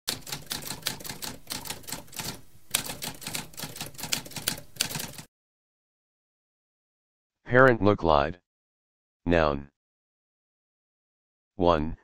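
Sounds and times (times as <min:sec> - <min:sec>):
typewriter keys clacking: 0:00.1 - 0:05.3.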